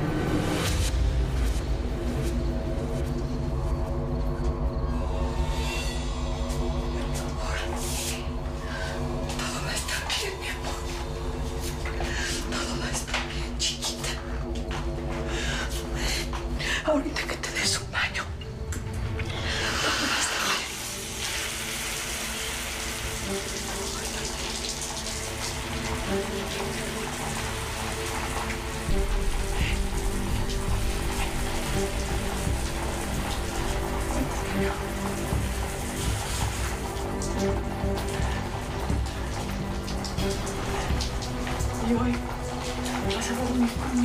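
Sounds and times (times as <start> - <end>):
background music with held notes: 0.0 - 44.0
shower spray hissing: 6.4 - 13.4, 19.2 - 44.0.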